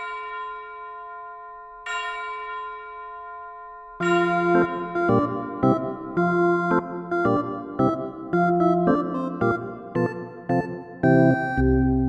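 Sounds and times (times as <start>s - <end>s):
bell-like chime ringing: 0.0s - 7.3s.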